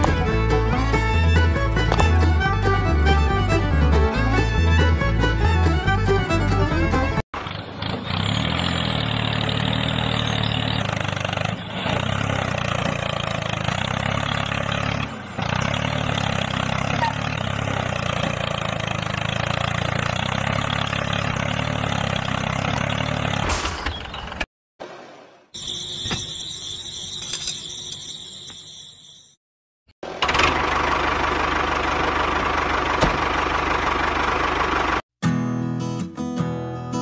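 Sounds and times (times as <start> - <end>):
tractor engine running: 0.0 - 24.4, 30.0 - 35.0.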